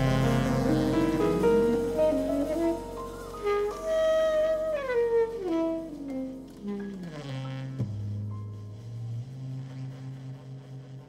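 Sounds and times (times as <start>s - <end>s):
jazz closing chord ringing: 0.0s - 10.6s.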